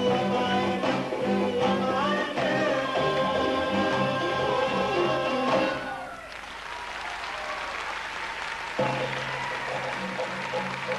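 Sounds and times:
audience applauding: 6.0 - 10.9.

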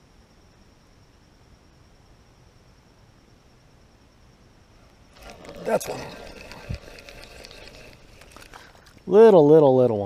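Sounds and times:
fishing reel whirring and ticking: 5.1 - 9.5.

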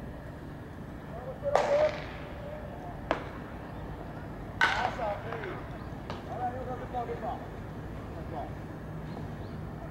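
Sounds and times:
baseball bat hitting ball: 1.5 - 2.3, 4.6 - 5.5.

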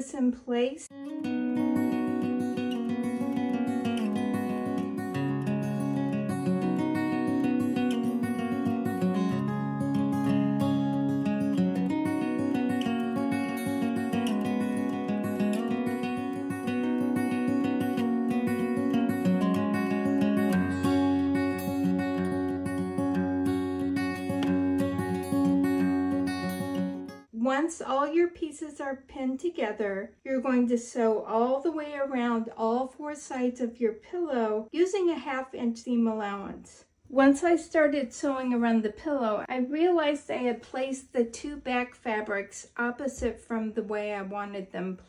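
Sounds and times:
strummed acoustic guitar chords: 1.0 - 27.2.

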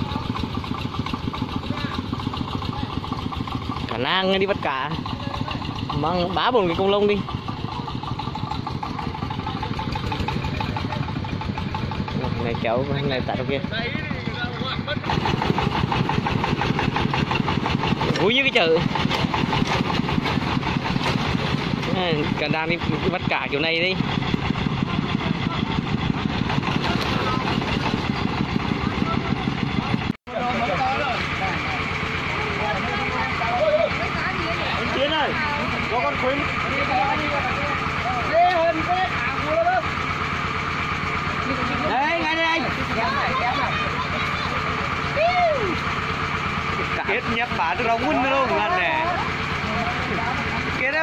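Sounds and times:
single-cylinder diesel engine running: 0.0 - 51.0
voices: 0.0 - 51.0.

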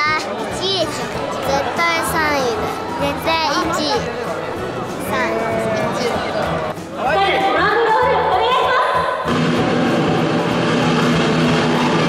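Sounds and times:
loud music over sound system: 9.3 - 12.0.

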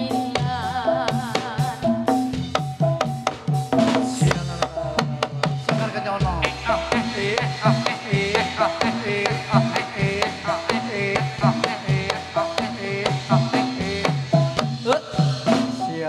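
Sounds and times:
ringing struck metal percussion: 0.0 - 9.6
drums with falling-pitch strokes: 0.0 - 16.0.

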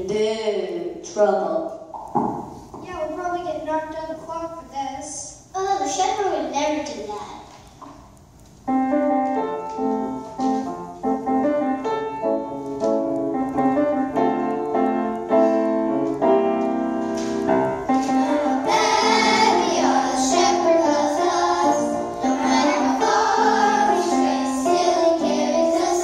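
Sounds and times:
piano chords: 8.6 - 26.0
children's choir singing: 18.2 - 26.0.

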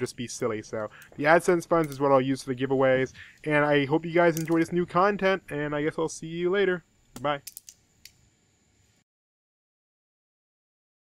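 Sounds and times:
butterfly knife clacking: 4.3 - 4.8, 7.2 - 8.2.

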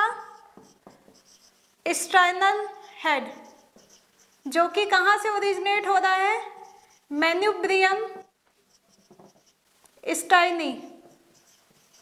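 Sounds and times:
marker pen writing on whiteboard: 0.0 - 9.8, 10.4 - 12.0.

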